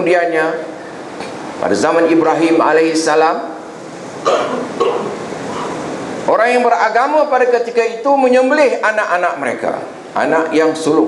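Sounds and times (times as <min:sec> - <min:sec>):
man clearing his throat: 0:04.2 - 0:05.8.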